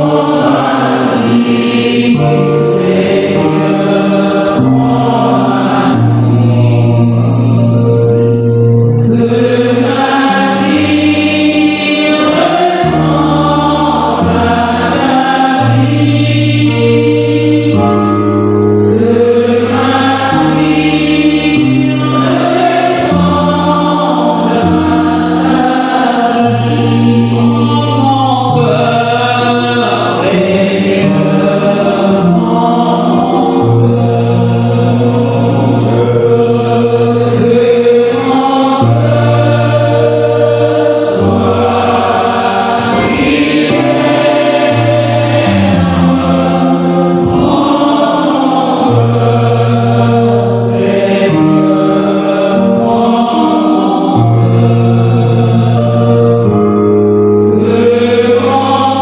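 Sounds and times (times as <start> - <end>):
choir singing slow hymn: 0.0 - 59.0.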